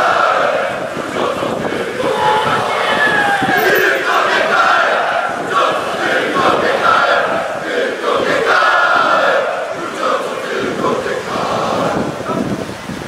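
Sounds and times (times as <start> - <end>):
crowd chanting and shouting: 0.0 - 12.7.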